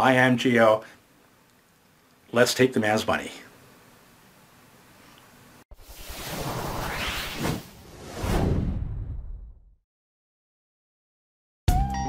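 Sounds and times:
whoosh sound effects: 5.7s - 9.6s.

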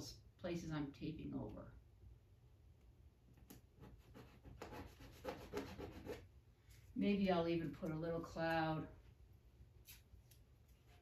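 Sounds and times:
fingertips rubbing tape: 3.8s - 6.2s.

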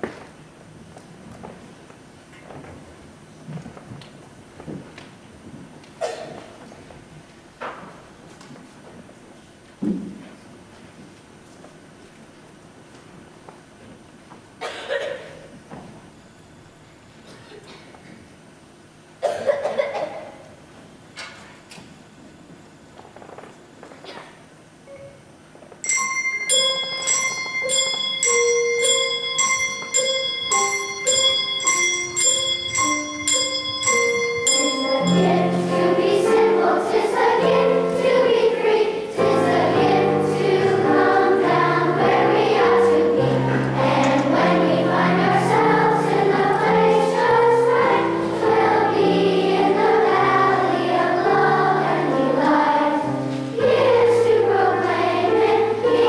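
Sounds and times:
children's choir singing: 14.6s - 16.2s, 19.2s - 20.5s, 25.8s - 56.0s
instrumental accompaniment: 25.8s - 56.0s.

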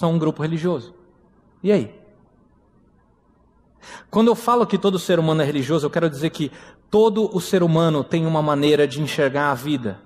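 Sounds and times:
man's quick intake of breath: 3.8s - 4.1s.

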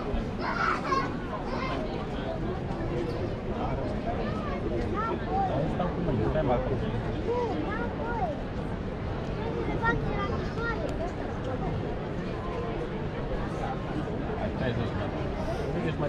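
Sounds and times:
crowd of people talking: 0.0s - 16.0s.

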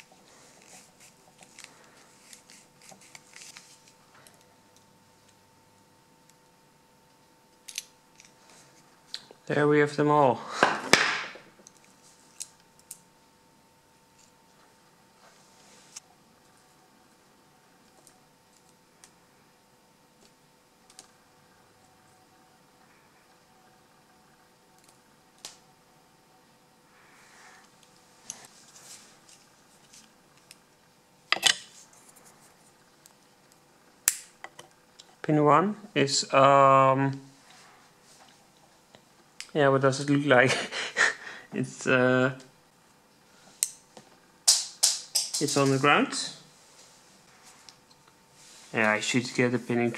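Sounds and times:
paper rustling: 0.0s - 4.0s.

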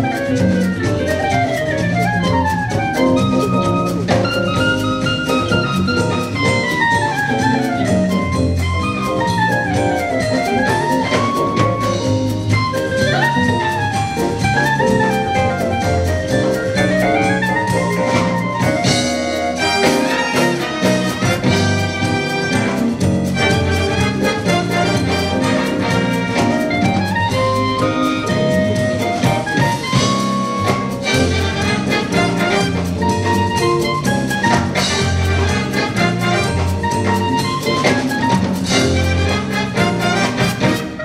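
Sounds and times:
jazz big band playing: 0.0s - 41.0s
woodwind solo melody: 0.0s - 41.0s.

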